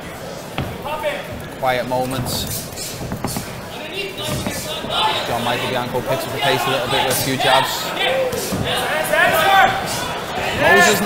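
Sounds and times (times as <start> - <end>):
hall room noise: 0.0 - 11.0
commentator speaking: 0.9 - 9.6, 10.6 - 11.0.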